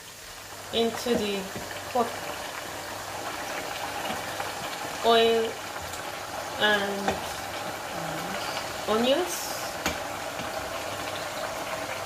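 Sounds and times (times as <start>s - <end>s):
onions sizzling in hot oil: 0.0s - 12.0s.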